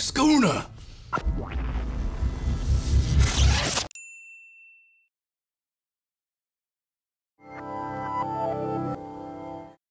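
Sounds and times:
high ding: 3.9 - 5.1.

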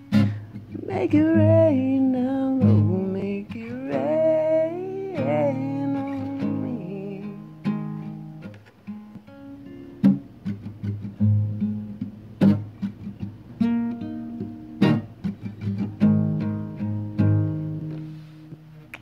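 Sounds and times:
acoustic guitar chord strokes: 0.0 - 18.8.

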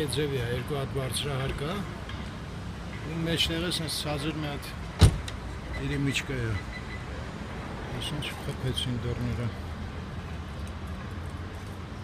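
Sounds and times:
street background: 0.0 - 12.0
sharp thump: 5.0 - 5.4.

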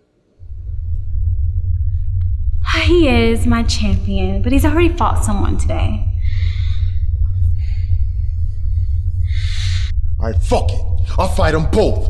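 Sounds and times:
deep bass drone: 0.4 - 12.0.

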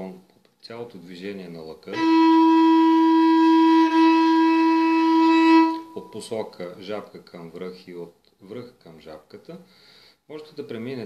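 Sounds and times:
bowed string sustained note: 1.9 - 6.3.

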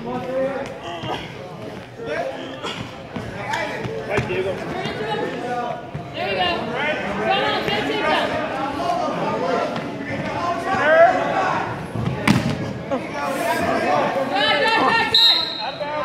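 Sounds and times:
people talking and calling: 0.0 - 16.0.

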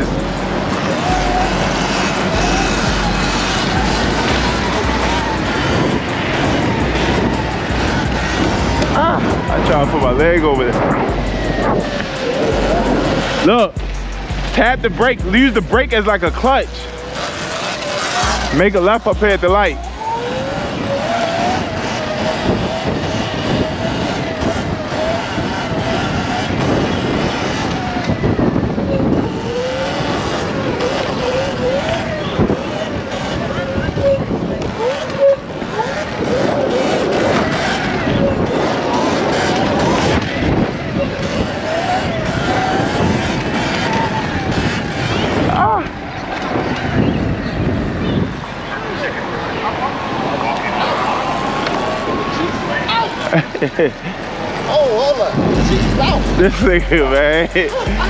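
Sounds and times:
wind rushing over microphone: 0.0 - 58.0.

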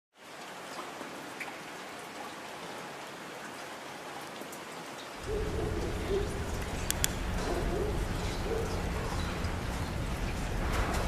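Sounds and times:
steady rain hiss: 0.2 - 11.0
faint drips: 4.4 - 11.0.

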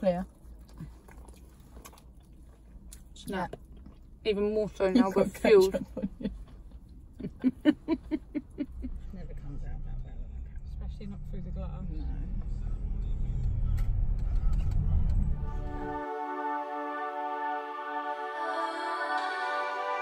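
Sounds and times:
women talking: 0.0 - 0.3, 4.3 - 6.3
women laughing: 5.5 - 6.5, 7.1 - 9.0
low rumble: 8.2 - 16.0
music: 14.3 - 20.0.

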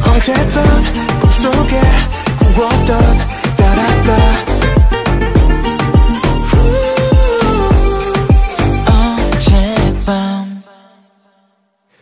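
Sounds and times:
pop song sung note: 0.0 - 11.4.

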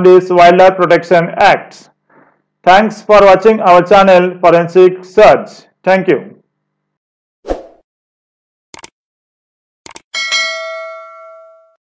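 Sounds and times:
notification bell ding: 10.2 - 11.8.

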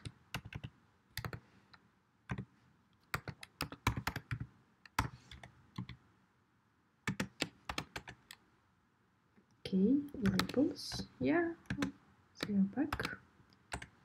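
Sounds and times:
keyboard typing: 0.0 - 1.4, 2.3 - 6.0, 7.1 - 8.4, 10.1 - 14.0.

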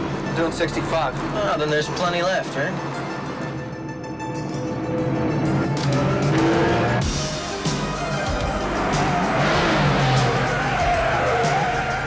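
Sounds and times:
car engine revving high: 4.6 - 12.0.

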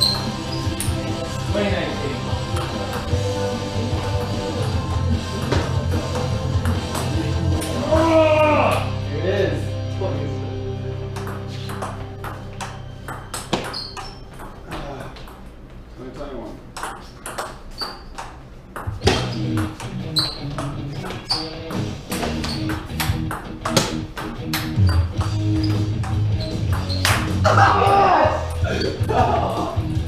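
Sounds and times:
background music: 0.0 - 14.6, 19.0 - 30.0
ping pong ball striking paddles: 11.1 - 15.4, 16.8 - 27.3.

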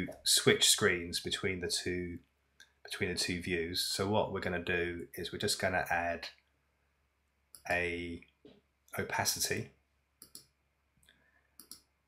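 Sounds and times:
computer mouse clicking: 10.2 - 10.5, 11.6 - 11.9.

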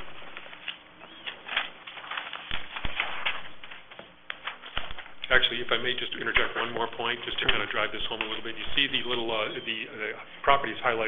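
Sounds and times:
low background hiss: 3.5 - 11.0.

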